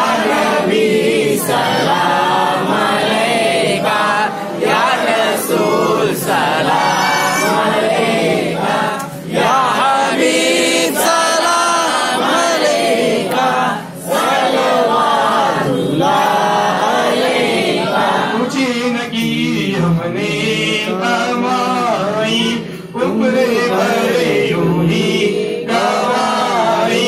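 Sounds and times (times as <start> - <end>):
men chanting together: 0.0 - 27.0.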